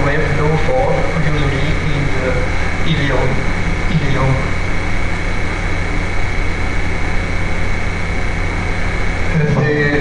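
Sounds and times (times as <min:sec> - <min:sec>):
low droning hum: 0:00.0 - 0:10.0
thin high whine: 0:00.0 - 0:10.0.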